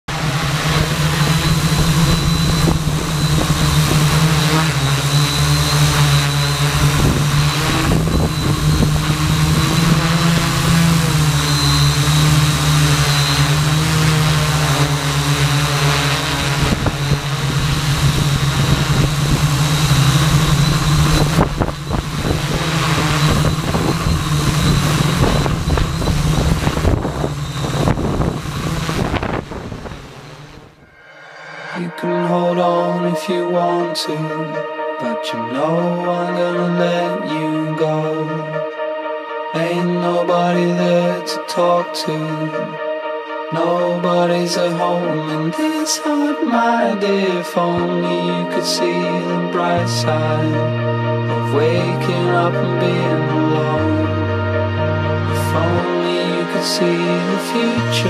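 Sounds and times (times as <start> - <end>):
drone motors buzzing: 0.0 - 32.0
rush of air: 23.2 - 32.2.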